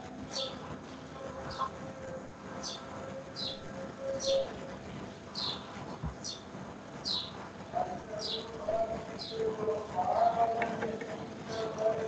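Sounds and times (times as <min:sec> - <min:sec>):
bird chirping: 0:00.3 - 0:00.6, 0:01.4 - 0:01.7, 0:02.6 - 0:04.7, 0:05.3 - 0:07.4, 0:08.2 - 0:08.5.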